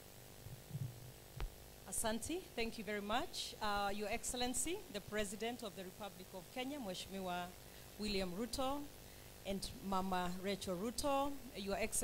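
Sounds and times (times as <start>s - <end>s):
electrical mains hum: 0.0s - 12.0s
woman speaking: 1.9s - 8.9s, 9.5s - 12.0s.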